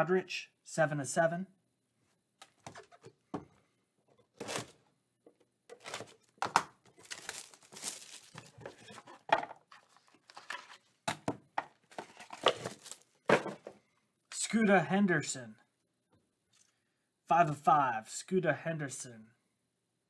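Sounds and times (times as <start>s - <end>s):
plastic wrapping crinkling: 5.7s - 10.8s, 12.1s - 13.2s.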